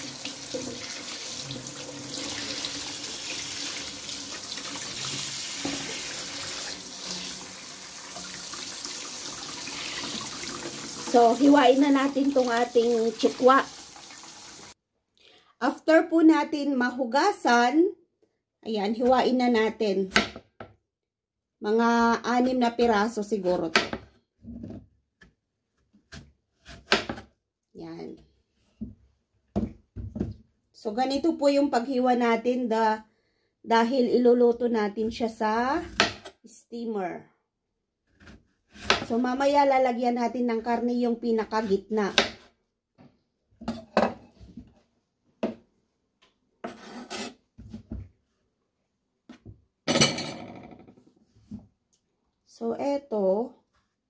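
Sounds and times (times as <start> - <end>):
knife cutting on board: 46.6 - 47.7.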